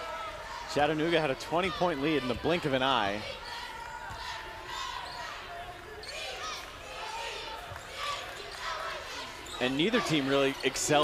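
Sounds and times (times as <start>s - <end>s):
arena crowd voices: 0.0s - 11.0s.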